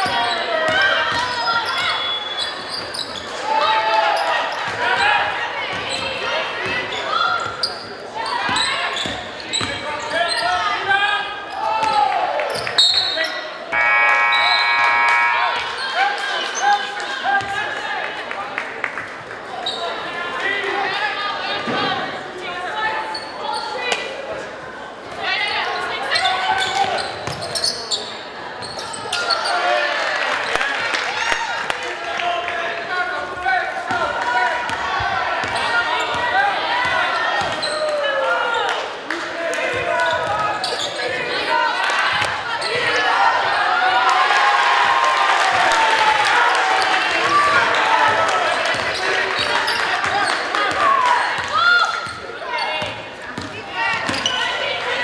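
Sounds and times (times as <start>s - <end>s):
voices calling out in a hall: 0.0s - 55.0s
short steady tone: 13.7s - 15.8s.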